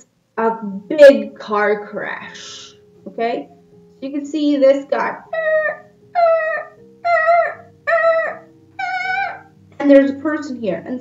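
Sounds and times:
high-pitched vocal calls: 5.2 - 9.6.

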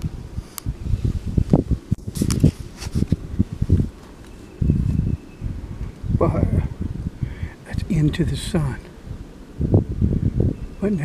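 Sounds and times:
cloth rustling against microphone: 0.4 - 5.2.

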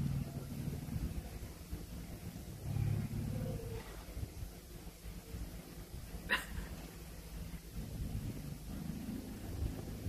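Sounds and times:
low steady background rumble: 0.0 - 10.0.

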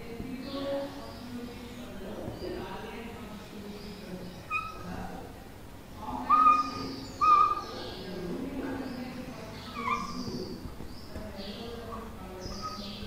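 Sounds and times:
whiteboard marker squeaking: 4.5 - 4.9, 9.7 - 10.4.

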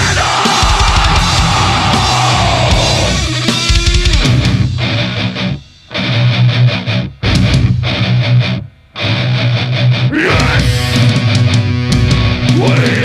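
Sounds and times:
deathcore distorted guitars and drums: 0.0 - 13.0.

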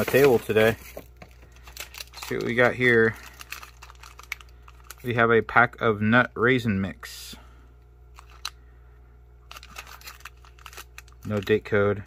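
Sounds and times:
food pouch crinkling: 1.3 - 5.1, 9.5 - 11.6.

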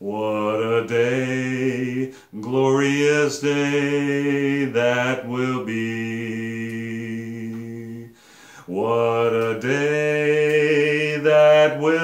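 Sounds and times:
man singing gospel song: 0.0 - 12.0.

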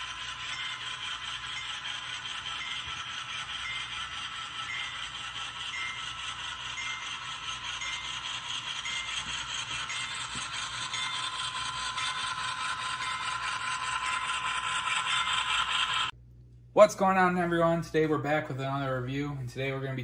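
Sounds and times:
model train wheels rattling: 0.0 - 16.2, 17.0 - 20.0.

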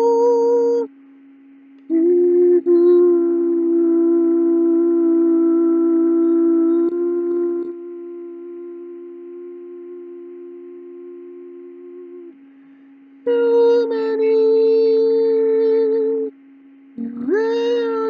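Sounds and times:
man humming a long note: 0.0 - 0.9, 1.8 - 18.0
low drone tone: 0.0 - 18.0.

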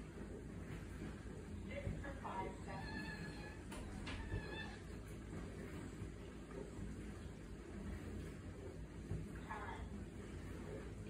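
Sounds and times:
small dog whining: 2.6 - 4.9.

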